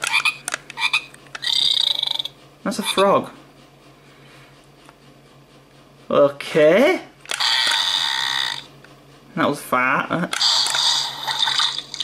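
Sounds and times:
electronic frog croaks: 0.0s - 2.3s, 7.4s - 8.7s, 10.4s - 12.0s.

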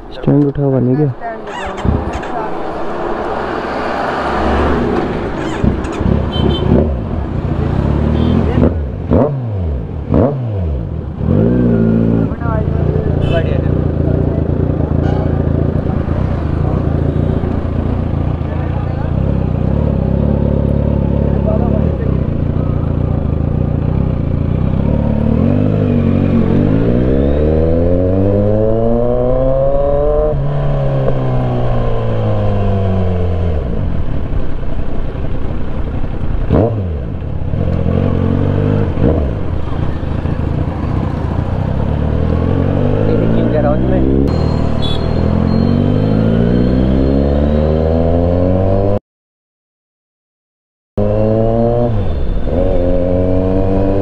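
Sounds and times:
motorcycle engine revving: 1.4s - 34.7s, 35.4s - 49.0s, 51.0s - 54.0s.

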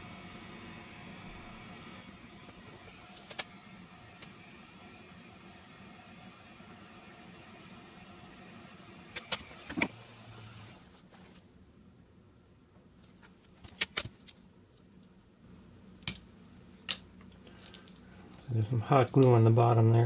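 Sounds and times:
hot air gun fan blowing: 0.0s - 11.4s.

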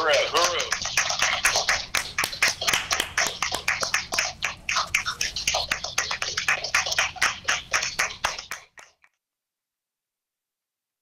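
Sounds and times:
people clapping: 0.0s - 9.0s.

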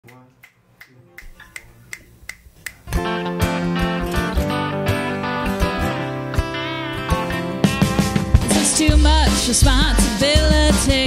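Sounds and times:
country-blues band playing: 2.7s - 11.0s.

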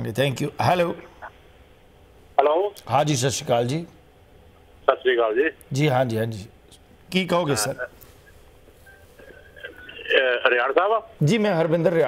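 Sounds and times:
telephone line hiss: 7.5s - 10.7s.

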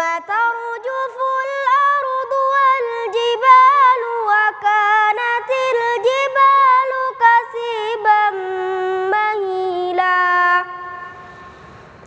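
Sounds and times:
girl reciting melodically: 0.0s - 11.6s.

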